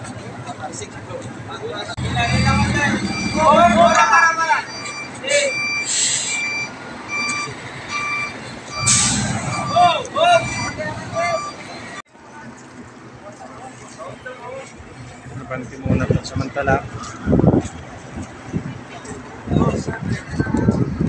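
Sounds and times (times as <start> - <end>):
truck reversing alarm beeping: 2.0 - 12.0.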